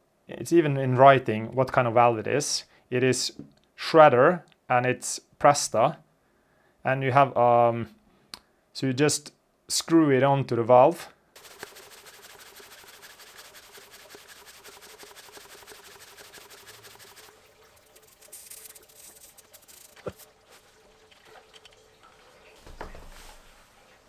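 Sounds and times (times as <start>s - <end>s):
hand pump strokes: 11.4s - 20.3s.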